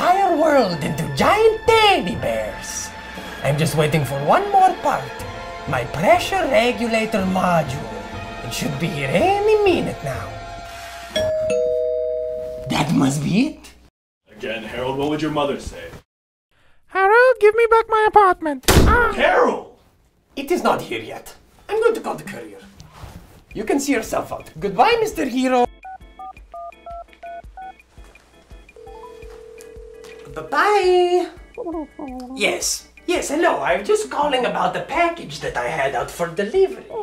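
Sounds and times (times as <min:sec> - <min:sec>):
doorbell chime ringing: 0:11.2 - 0:12.7, 0:28.8 - 0:30.5
phone keypad dialing beeps: 0:25.8 - 0:27.8
long steady phone tone: 0:28.8 - 0:30.6.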